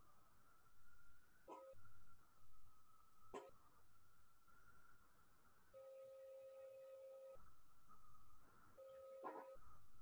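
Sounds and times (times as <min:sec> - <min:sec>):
faint electronic tone: 0:05.7 - 0:07.5, 0:08.8 - 0:09.8.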